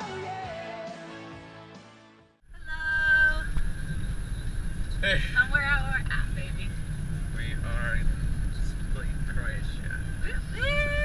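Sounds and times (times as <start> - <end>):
background music: 0.0 - 2.4
car cabin road rumble: 2.5 - 11.0.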